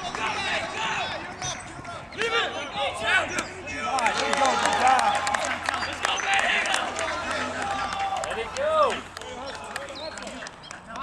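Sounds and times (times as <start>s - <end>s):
people shouting and yelling: 0.0s - 11.0s.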